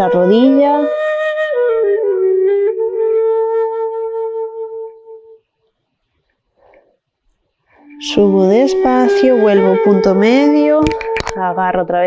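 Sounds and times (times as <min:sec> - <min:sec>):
flute playing slow melody: 0:00.0 - 0:05.4, 0:07.8 - 0:11.6.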